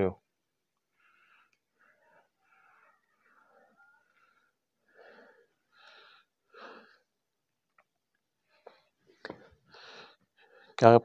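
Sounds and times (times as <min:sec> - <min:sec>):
soft breathing: 0:00.6 - 0:10.8.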